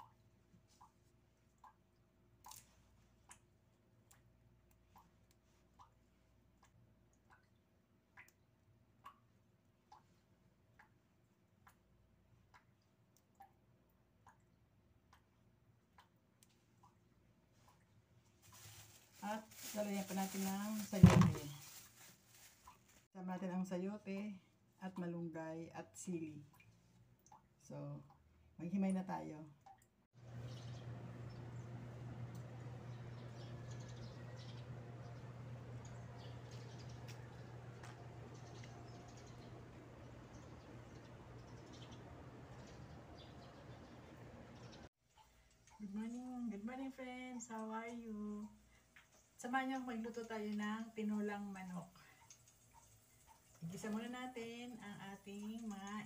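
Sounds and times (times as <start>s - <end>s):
small birds chirping: 30.2s - 44.9s.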